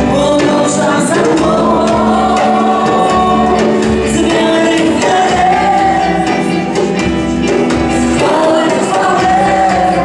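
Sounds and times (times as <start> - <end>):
church worship music with singing: 0.0 - 10.0.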